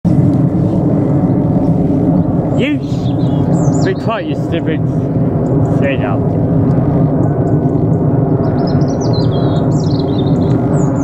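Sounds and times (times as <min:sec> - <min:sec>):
jet plane passing overhead: 0:00.1 - 0:11.0.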